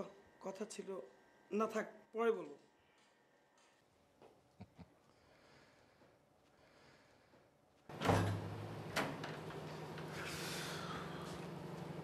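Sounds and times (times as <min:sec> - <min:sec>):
wooden door opening: 0:07.9 - 0:09.7.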